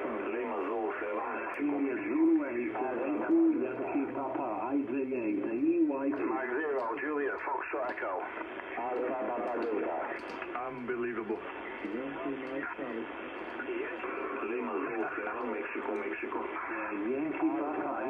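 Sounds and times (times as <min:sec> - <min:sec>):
radio voices talking over each other: 0:00.0 - 0:18.0.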